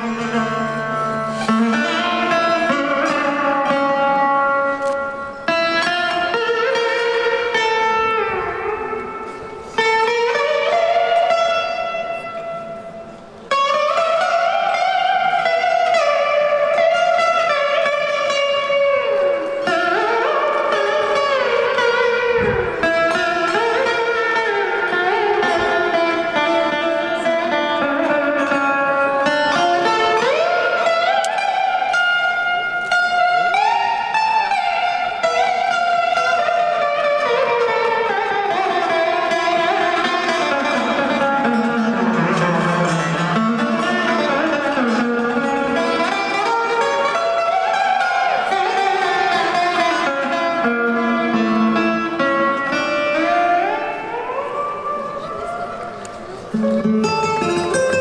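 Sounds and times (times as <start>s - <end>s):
slide guitar melody: 0.0s - 58.0s.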